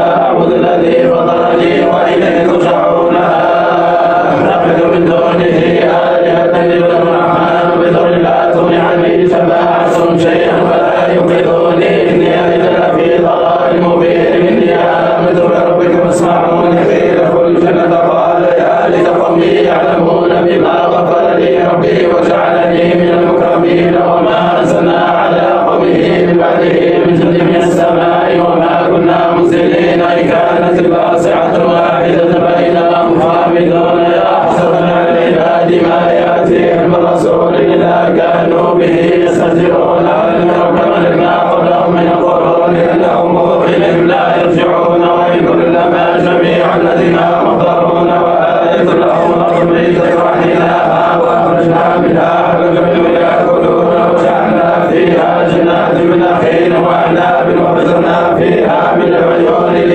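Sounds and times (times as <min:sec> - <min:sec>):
men chanting together: 0:00.0 - 0:59.9.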